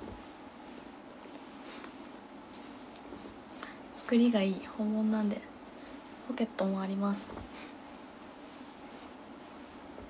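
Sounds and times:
faint rustles of movement: 0.0s - 10.0s.

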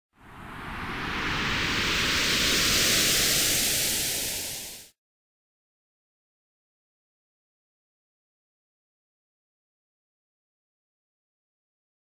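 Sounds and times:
whoosh with rising sweep: 0.2s - 5.0s.

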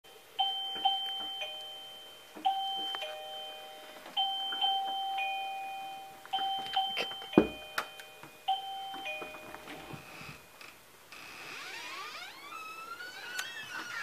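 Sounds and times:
two-tone doorbell chime: 0.1s - 10.4s.

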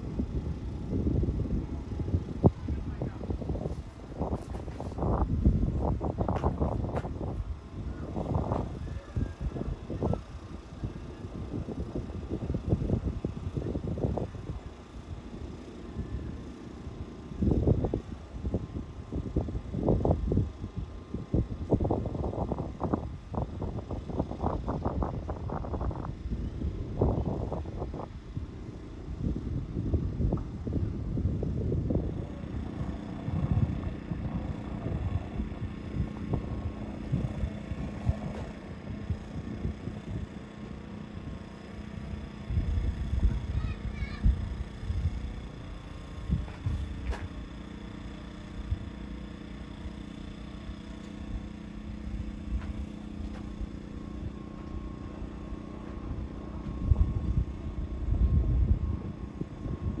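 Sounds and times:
steady low hum: 0.0s - 60.0s
wind buffeting microphone: 0.0s - 60.0s.

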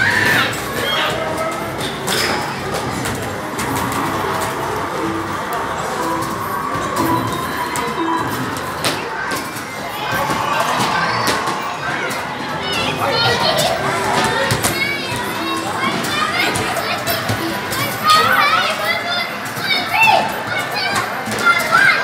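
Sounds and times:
arcade machines: 0.0s - 22.0s
children's voices and chatter: 0.0s - 22.0s.

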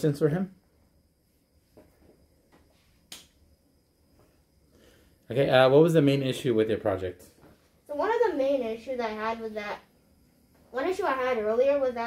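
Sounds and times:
sharp click: 3.1s - 3.4s.

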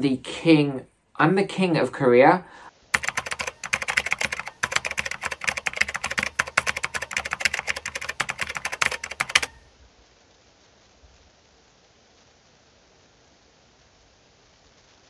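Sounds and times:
rapid keyboard typing: 2.9s - 9.6s.

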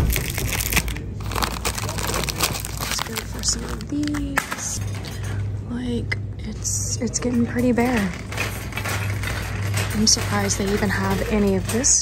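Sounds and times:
shopping cart rattling: 0.0s - 5.4s, 6.5s - 12.0s
steady low hum: 0.0s - 12.0s.

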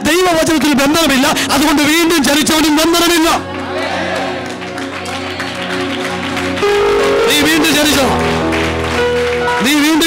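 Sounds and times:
electronic keyboard chords: 2.1s - 10.0s.

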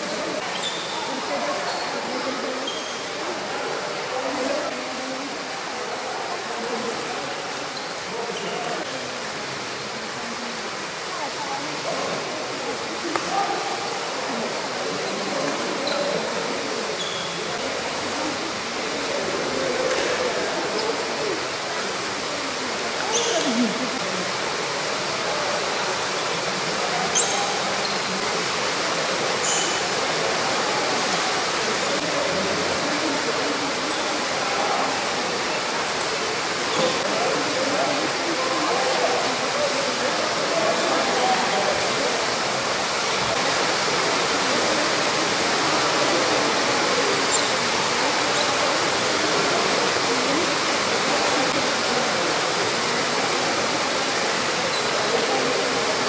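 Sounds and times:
faint murmuring voices: 0.0s - 56.0s.

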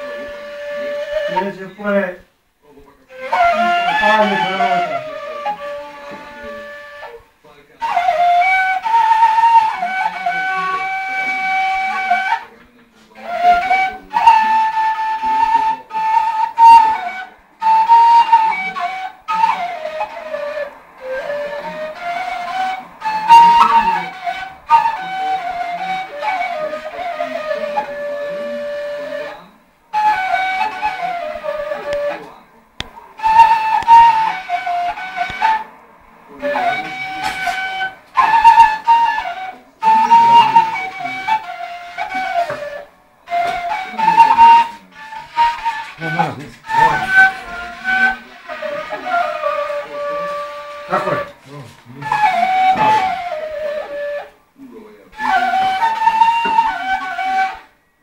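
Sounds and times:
wooden flute melody: 0.0s - 58.0s.

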